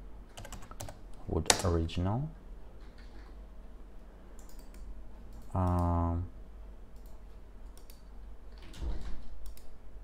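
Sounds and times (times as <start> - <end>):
low steady hum: 0.0 - 10.0
computer mouse clicks: 4.4 - 6.0, 6.9 - 8.6, 9.4 - 9.8.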